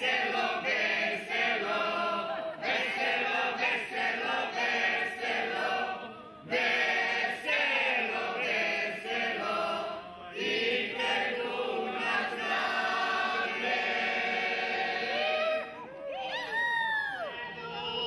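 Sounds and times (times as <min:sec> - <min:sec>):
group of voices singing: 0:00.0 - 0:15.9.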